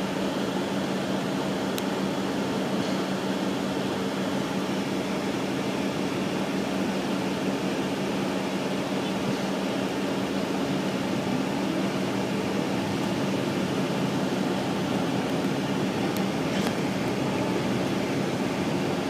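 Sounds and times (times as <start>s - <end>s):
bus engine drone: 0.0s - 19.0s
road noise: 0.0s - 19.0s.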